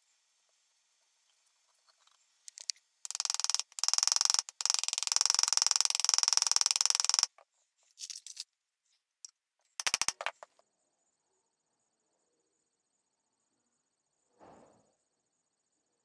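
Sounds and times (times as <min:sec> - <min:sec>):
hammer tapping on metal pin: 0:02.6 - 0:07.4, 0:09.8 - 0:10.5.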